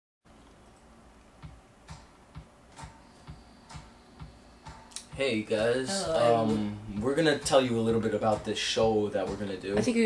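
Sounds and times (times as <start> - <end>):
faint ticking with low thud: 1.4 - 5.3.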